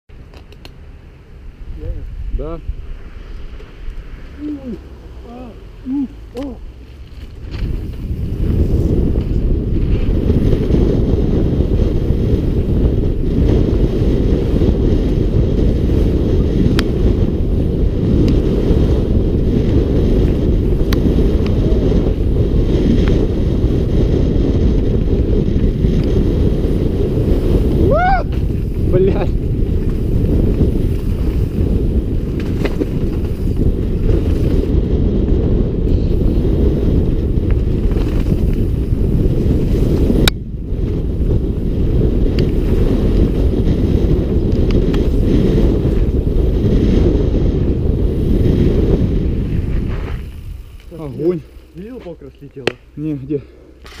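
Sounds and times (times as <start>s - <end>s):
tyre and trail noise: 0.1s - 54.0s
wind buffeting microphone: 0.1s - 54.0s.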